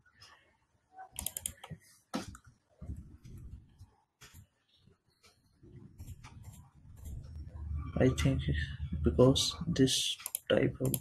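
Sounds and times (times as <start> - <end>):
keyboard keystrokes: 1.2 - 1.7, 10.2 - 11.0.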